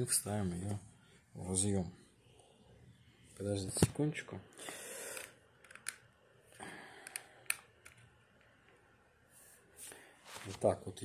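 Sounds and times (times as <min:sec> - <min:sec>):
small sharp clicks: 0:05.1 - 0:06.1.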